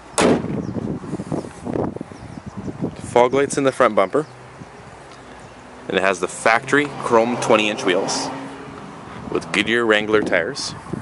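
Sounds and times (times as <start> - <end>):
car hood slamming shut: 0.2 - 0.6.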